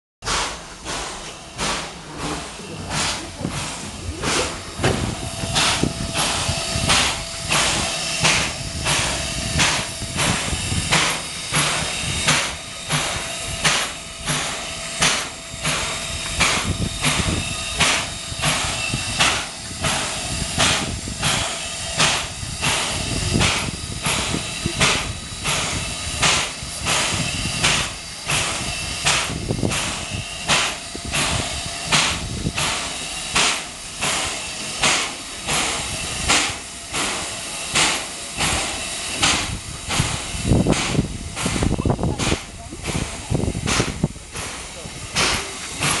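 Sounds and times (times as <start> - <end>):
rhythmic steam exhaust bursts: 0.2 - 46.0
steam hissing: 0.2 - 46.0.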